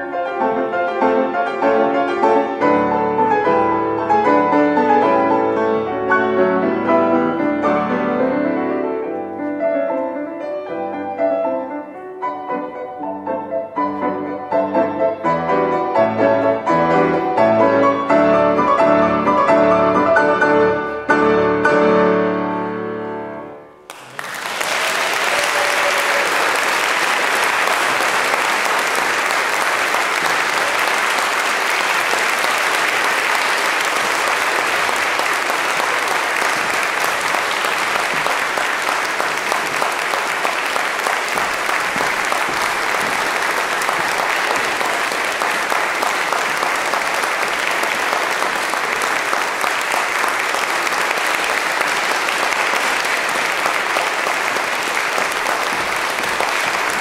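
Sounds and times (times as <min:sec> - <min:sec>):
audience applauding: 0:23.9 - 0:57.0.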